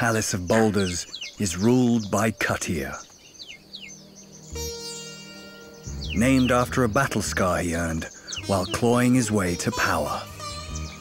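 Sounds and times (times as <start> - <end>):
falling bird calls: 0.0 - 11.0
low music drone: 1.6 - 11.0
orchestral chord: 4.0 - 7.0.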